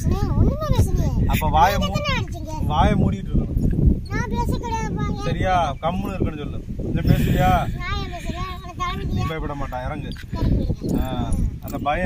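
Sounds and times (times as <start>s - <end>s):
voices talking: 0.0s - 12.0s
wind rumbling on microphone: 0.0s - 12.0s.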